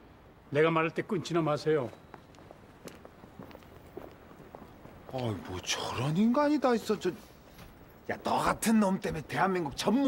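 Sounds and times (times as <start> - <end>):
footsteps on pavement: 1.8 - 5.5.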